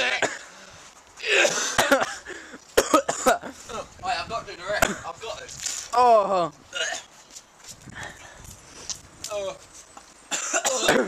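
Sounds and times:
boys coughing and spluttering: 0:00.0 - 0:00.5, 0:01.2 - 0:03.6, 0:06.7 - 0:07.1, 0:10.3 - 0:11.0.

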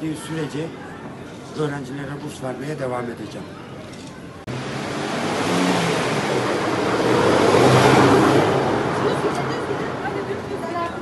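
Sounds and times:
vehicle passing close by: 0:04.5 - 0:10.4.

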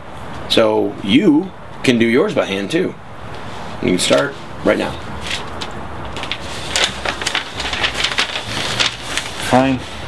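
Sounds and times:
paper sheets rustling: 0:03.9 - 0:10.0.

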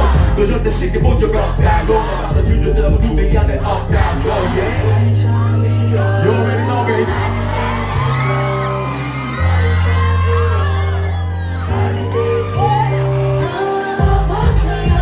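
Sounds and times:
deep bass notes: 0:00.0 - 0:15.0
drum beat: 0:01.0 - 0:04.2
woman singing into a microphone: 0:09.7 - 0:15.0.

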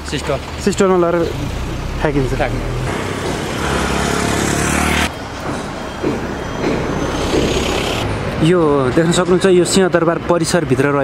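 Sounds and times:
motor vehicle engine running: 0:00.0 - 0:08.2
distant traffic noise: 0:00.0 - 0:11.0.

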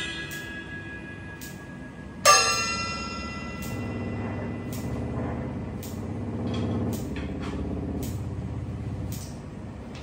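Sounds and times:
buzzing motor-like drone: 0:02.8 - 0:10.0.

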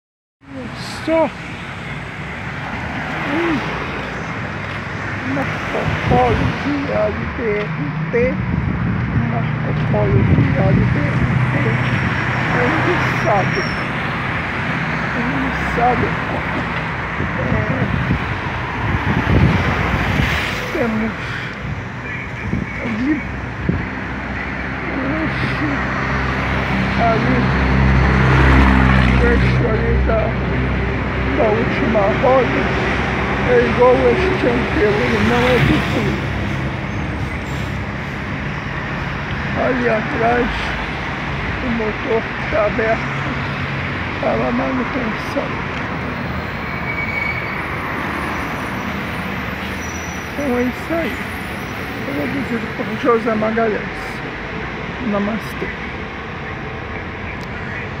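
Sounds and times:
bus driving past: 0:00.4 - 0:58.0
street traffic passing: 0:00.4 - 0:58.0
truck diesel engine passing: 0:00.5 - 0:58.0.

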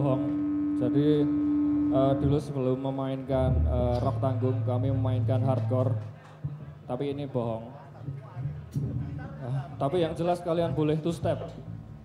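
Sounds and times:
held steady tone: 0:00.0 - 0:05.8
amplifier hum: 0:00.0 - 0:06.0
man talking over pa system: 0:02.0 - 0:06.1.

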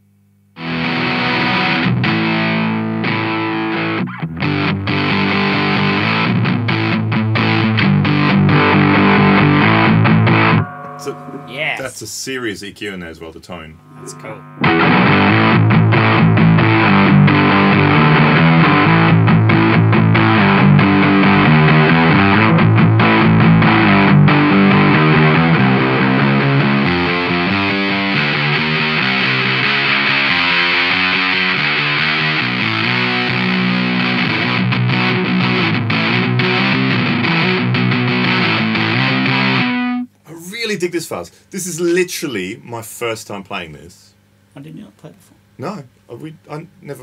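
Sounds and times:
fuzzed electric guitar riffing: 0:00.6 - 0:40.1.

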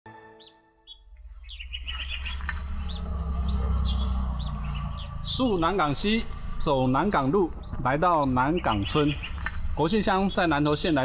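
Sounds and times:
small birds chirping: 0:00.4 - 0:11.0
low rumble: 0:01.0 - 0:10.0.

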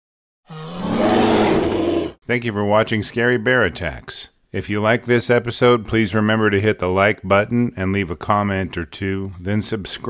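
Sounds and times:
bear roaring: 0:00.5 - 0:02.2.

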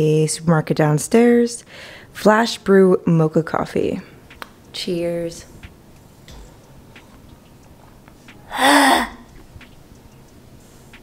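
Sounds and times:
woman's rasping noise of disgust: 0:08.5 - 0:09.2.

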